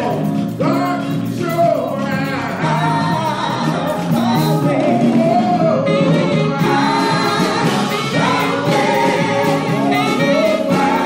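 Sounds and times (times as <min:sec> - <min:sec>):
gospel choir singing: 0:00.0 - 0:11.0
instrumental accompaniment: 0:00.0 - 0:11.0.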